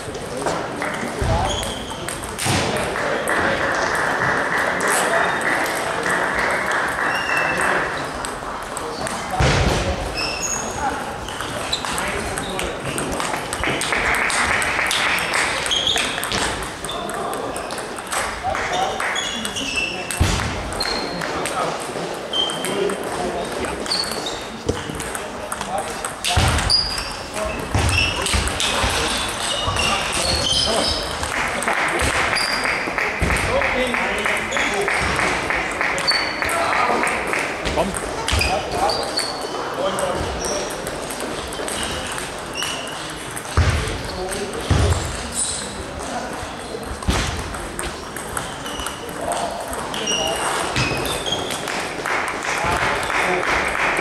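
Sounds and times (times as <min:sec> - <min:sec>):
table tennis ball clicking: 0:22.4 - 0:27.2.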